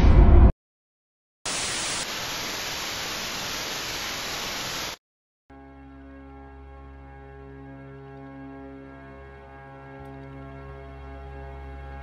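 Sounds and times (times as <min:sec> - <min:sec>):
static hiss: 0:01.5 - 0:05.0.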